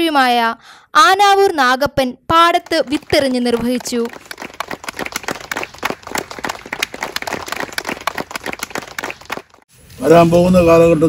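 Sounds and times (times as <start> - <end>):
people clapping: 2.4 - 9.6.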